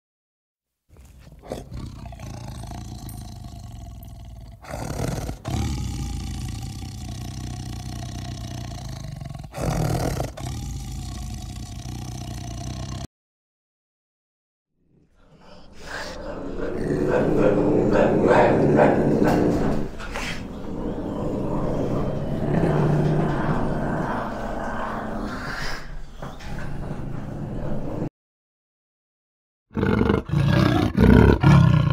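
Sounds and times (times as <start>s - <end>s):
tiger roaring: 1.0s - 13.1s, 15.8s - 25.8s, 29.7s - 31.9s.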